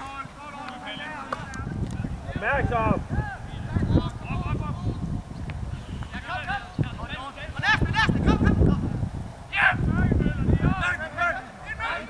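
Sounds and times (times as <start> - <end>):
players shouting: 0.0 - 4.8, 9.5 - 12.0
low microphone rumble: 1.4 - 11.0.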